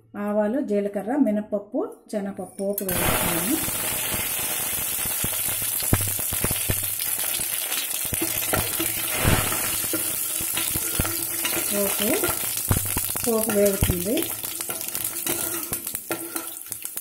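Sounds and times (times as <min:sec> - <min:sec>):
sizzling and crackling in oil: 0:02.9 - 0:17.0
spoon stirring: 0:09.8 - 0:17.0.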